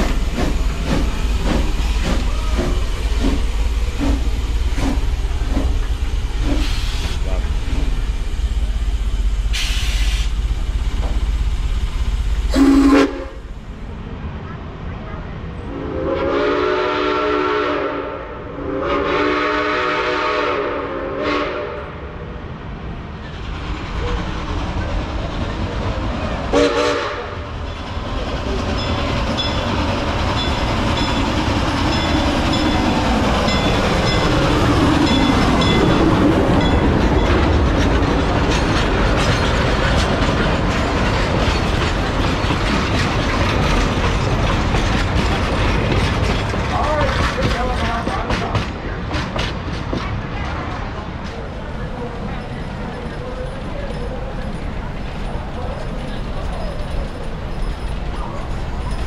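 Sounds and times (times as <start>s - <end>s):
wheels clacking over rail joints: 0.0s - 13.2s, 27.5s - 59.0s
train passing: 0.0s - 59.0s
steam locomotive chime whistle: 12.5s - 13.4s.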